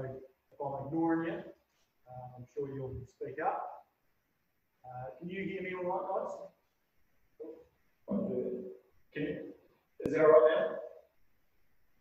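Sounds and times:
man speaking: 0.0s - 4.0s, 4.8s - 6.6s, 7.4s - 11.1s.

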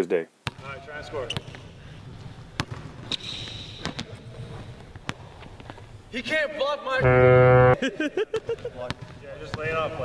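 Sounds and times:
sneakers squeaking on floor: 1.2s - 1.7s, 2.6s - 4.7s.

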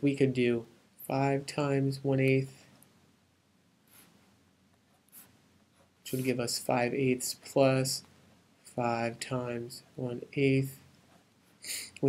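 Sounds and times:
pen scratching writing stroke: 4.9s - 6.4s.

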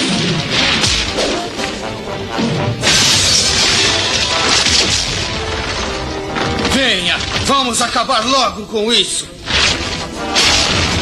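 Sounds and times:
dramatic background music: 0.0s - 11.0s
crash of shattering debris: 2.8s - 7.7s, 9.4s - 11.0s.

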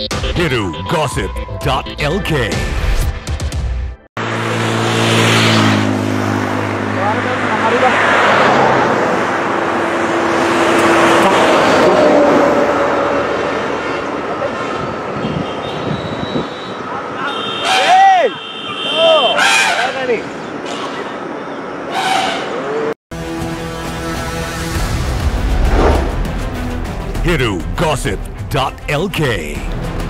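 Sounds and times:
music: 0.0s - 4.1s, 23.1s - 30.0s
large vehicle passing: 4.2s - 15.1s, 24.2s - 26.6s
road traffic noise: 4.2s - 30.0s
loud short shouts: 17.4s - 20.0s.

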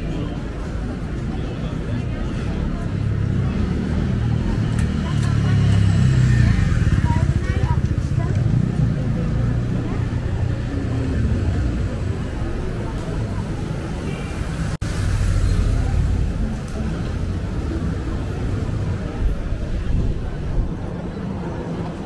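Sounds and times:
people talking: 0.0s - 22.0s.

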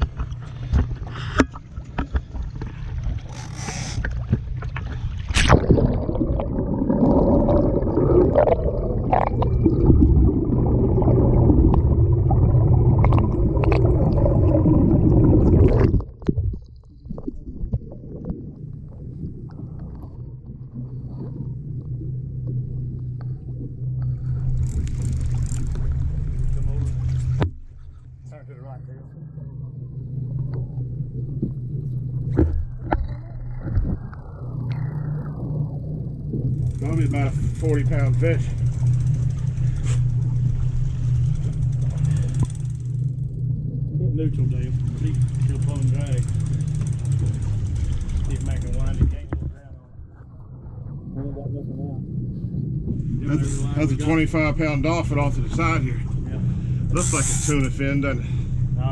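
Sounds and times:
water rushing and bubbling: 0.0s - 27.8s, 29.1s - 58.9s
outboard engines idling: 20.9s - 50.5s, 51.2s - 58.9s.

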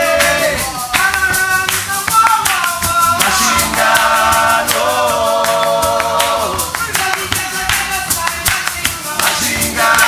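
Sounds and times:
hand clapping: 0.0s - 10.0s
people singing along: 0.0s - 10.0s.

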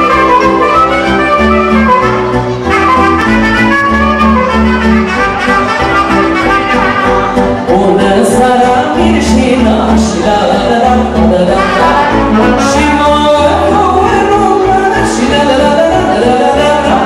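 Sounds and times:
held bass notes: 0.0s - 17.0s
wind instrument melody: 0.0s - 17.0s.

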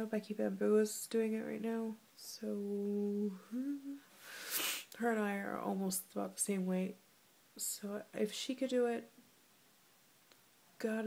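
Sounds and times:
woman humming: 2.7s - 4.1s
quick breath: 4.1s - 4.9s
woman speaking: 5.0s - 7.0s.

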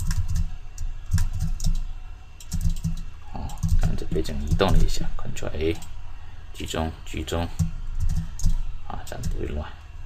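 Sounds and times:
computer keyboard keys clicking: 0.0s - 4.8s, 7.6s - 9.4s.

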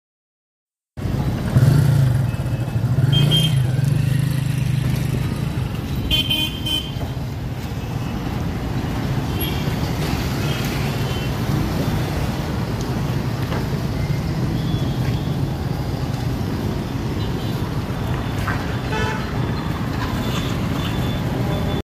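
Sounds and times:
traffic rumble: 1.0s - 21.8s
distant horn toots: 3.0s - 3.7s.

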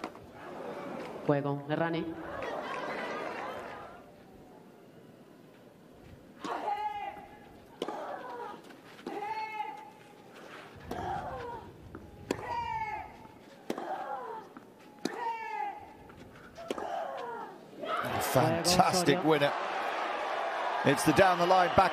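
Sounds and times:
rackets striking tennis ball: 6.4s - 9.4s, 10.8s - 17.3s.

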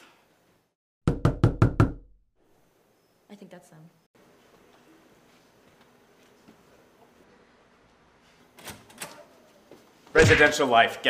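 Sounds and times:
sharp knocks on a door: 1.0s - 2.0s.

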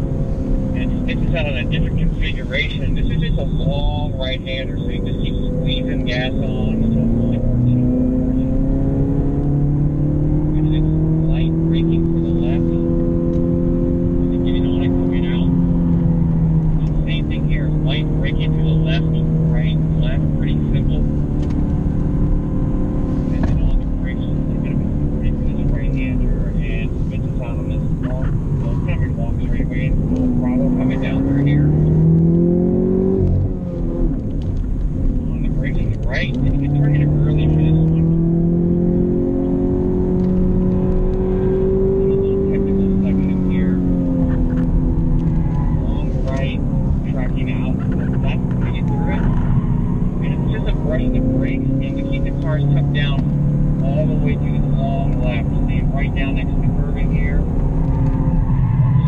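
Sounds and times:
car engine revving in cabin: 0.0s - 59.0s.

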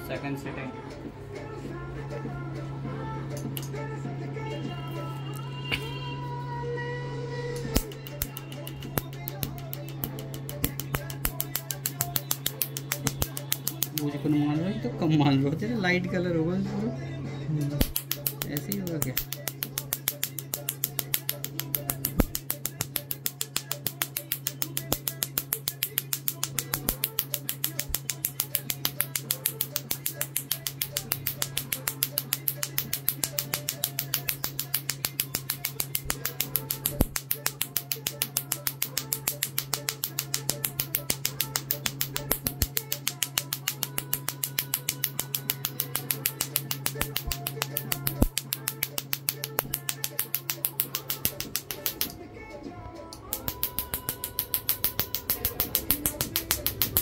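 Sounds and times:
laser snapping clicks: 7.6s - 14.2s, 17.8s - 52.2s, 53.1s - 57.0s.

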